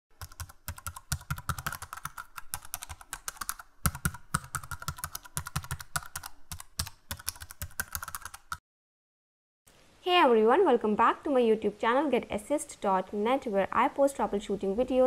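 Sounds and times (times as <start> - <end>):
rapid keyboard typing: 0.1 - 8.6.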